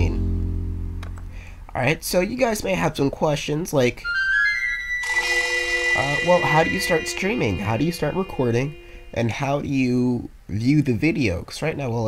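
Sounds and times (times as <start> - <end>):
held musical chord: 0.0 - 1.6, 5.1 - 9.8
rising notes run: 0.0 - 1.7, 4.9 - 9.8.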